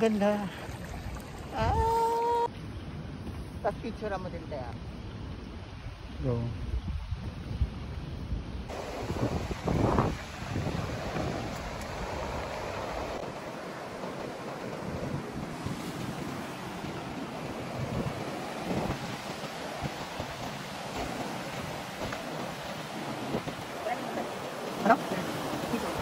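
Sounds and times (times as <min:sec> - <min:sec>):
wind buffeting microphone: 0:00.0 - 0:26.0
surf washing onto sand: 0:08.7 - 0:26.0.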